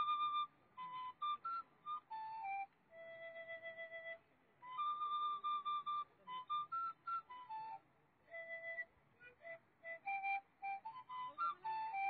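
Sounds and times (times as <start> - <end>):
solo flute melody: 0.0 - 12.0.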